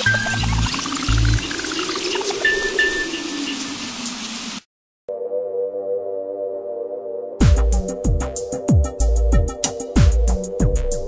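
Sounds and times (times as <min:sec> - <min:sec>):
crackling hiss: 0:00.8 - 0:04.7.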